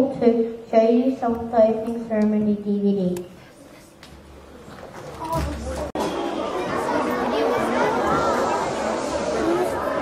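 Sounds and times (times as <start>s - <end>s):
children chattering: 1.9s - 10.0s.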